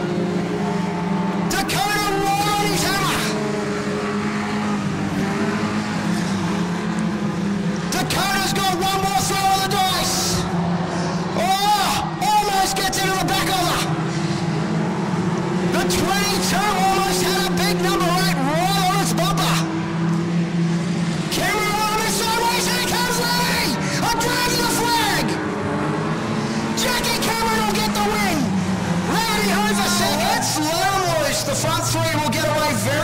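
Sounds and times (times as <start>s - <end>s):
race car engines: 0.0s - 33.0s.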